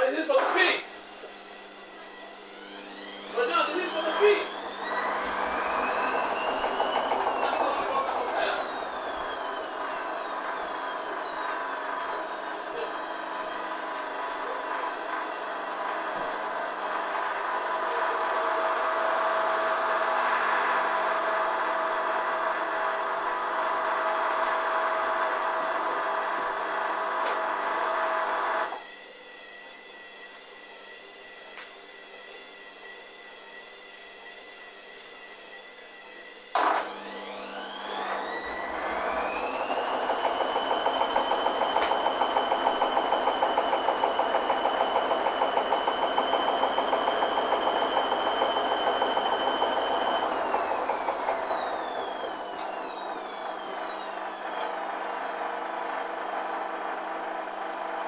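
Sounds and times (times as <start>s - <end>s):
motor whine rising in pitch: 0.0s - 58.0s
washing machine drum motor: 0.0s - 58.0s.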